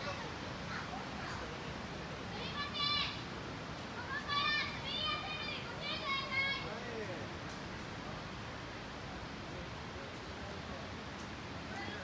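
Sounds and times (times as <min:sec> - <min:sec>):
falling water rushing: 0:00.0 - 0:12.0.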